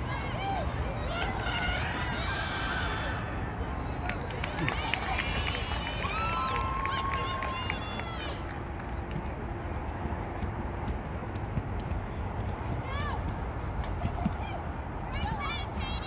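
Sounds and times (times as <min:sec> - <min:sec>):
players and spectators shouting: 0:00.0 - 0:03.6.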